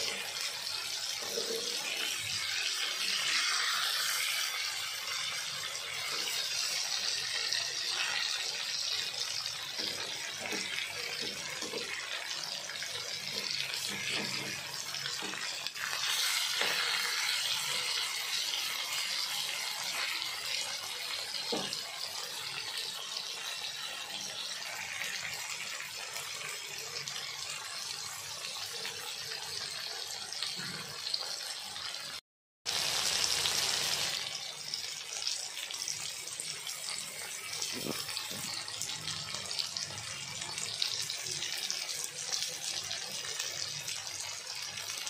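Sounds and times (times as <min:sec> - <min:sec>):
food sizzling in oil: 0:00.0 - 0:45.0.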